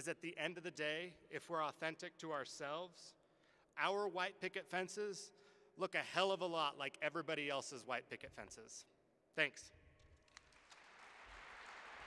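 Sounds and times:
faint audience applause: 10.3s - 12.0s.

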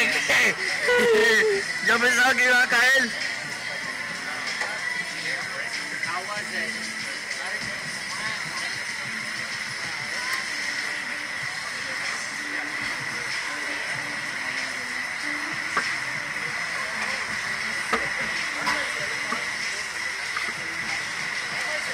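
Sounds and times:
faint voices: 0.0s - 21.9s.

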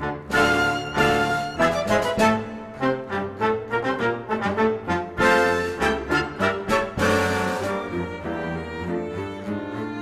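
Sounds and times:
low strings bass line: 4.7s - 10.0s.

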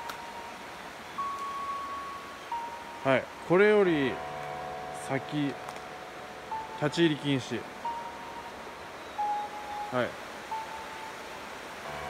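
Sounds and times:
background hiss: 0.0s - 12.0s
faint whistle-like tones: 7.8s - 11.1s.

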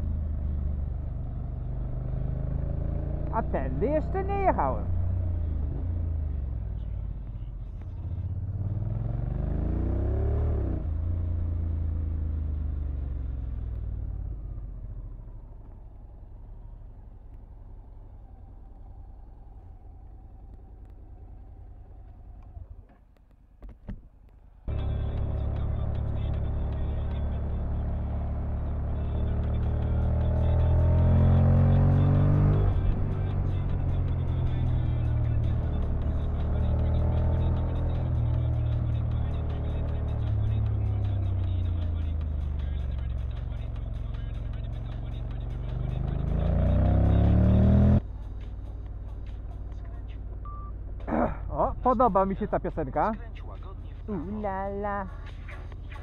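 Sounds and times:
motorcycle engine accelerating: 0.0s - 23.3s, 24.7s - 56.0s.

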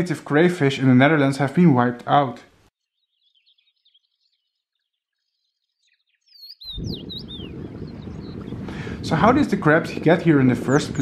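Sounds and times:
bird chirping: 2.8s - 8.6s, 10.6s - 11.0s
wind rumbling on microphone: 6.6s - 11.0s.

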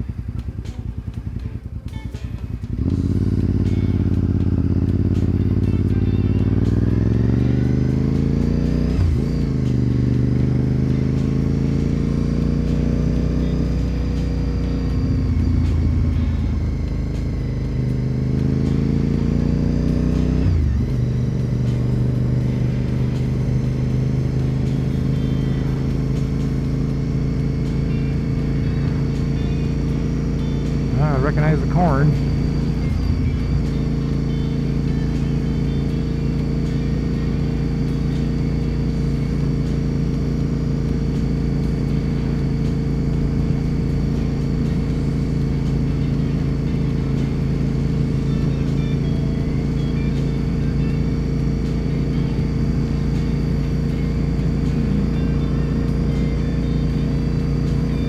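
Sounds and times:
motorcycle engine accelerating: 0.0s - 58.0s.

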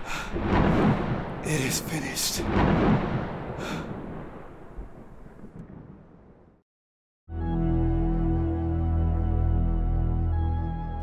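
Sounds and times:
thunder rumbling and cracking: 0.0s - 6.6s.

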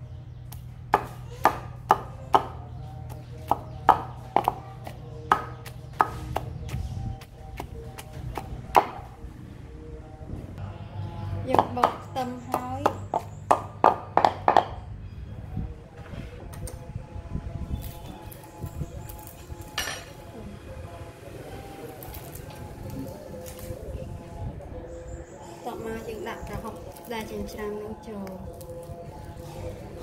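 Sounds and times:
wooden pestle pounding in mortar: 0.9s - 9.0s, 11.5s - 14.8s.

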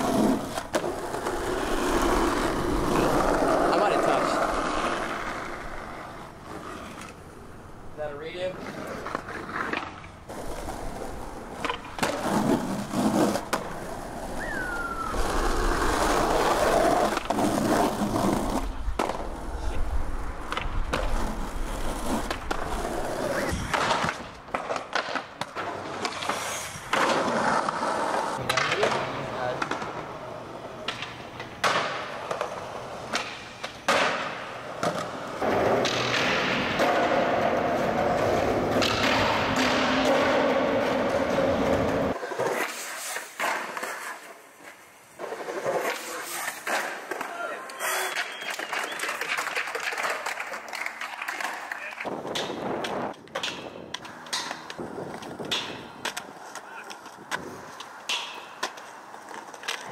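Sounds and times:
skateboard popping and landing clacks: 0.0s - 7.2s, 8.6s - 30.1s, 30.8s - 59.9s
skateboard wheels rolling on concrete: 0.0s - 59.9s.

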